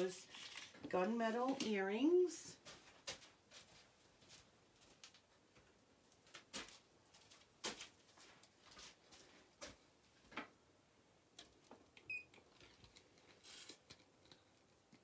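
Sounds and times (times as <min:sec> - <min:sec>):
faint clicks and rustles of packaging: 0:00.0 - 0:01.8, 0:02.6 - 0:10.5, 0:11.4 - 0:15.0.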